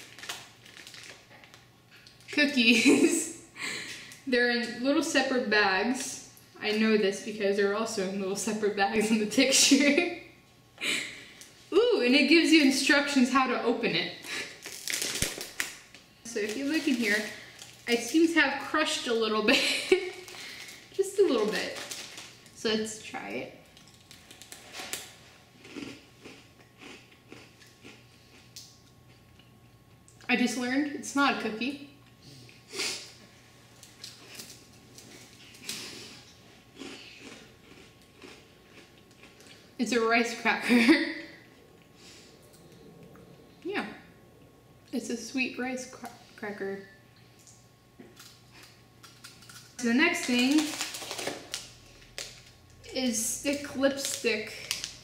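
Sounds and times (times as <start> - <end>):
plastic packaging crinkling: 0.0 - 2.3, 14.4 - 22.6, 23.7 - 25.2, 48.2 - 52.8, 53.5 - 55.0
rice cracker crunching: 0.0 - 2.3, 14.4 - 18.4, 20.1 - 22.6, 23.8 - 28.7, 36.8 - 39.6, 48.1 - 52.7, 53.5 - 55.0
faint chewing crunches: 23.8 - 30.3, 33.7 - 39.7.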